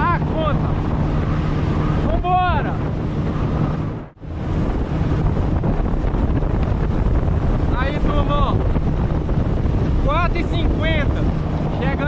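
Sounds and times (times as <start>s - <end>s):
water rushing under boat hull: 0.0s - 12.0s
wind buffeting microphone: 0.0s - 12.0s.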